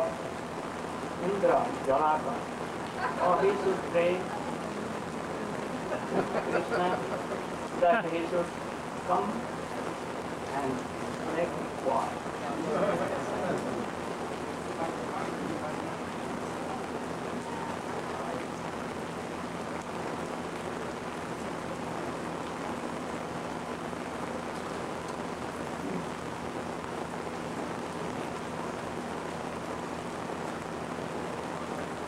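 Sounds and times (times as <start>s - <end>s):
heavy rain: 0.0s - 32.0s
low electrical hum: 0.0s - 32.0s.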